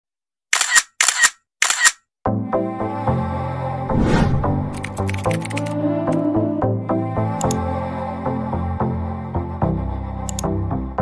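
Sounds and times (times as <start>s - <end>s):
camera shutter snaps: 0.5s - 2.0s, 4.7s - 6.2s.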